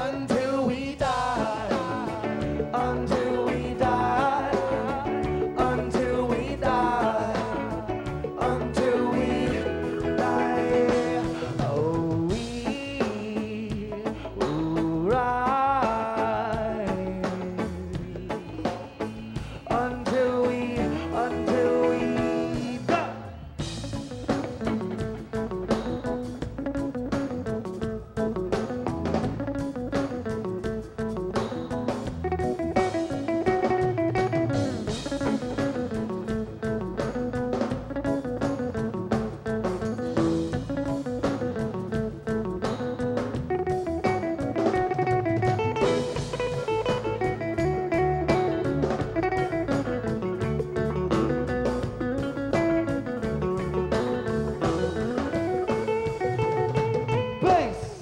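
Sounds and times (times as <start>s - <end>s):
drum kit and percussion: 0.0s - 58.0s
electric guitar lead: 0.0s - 58.0s.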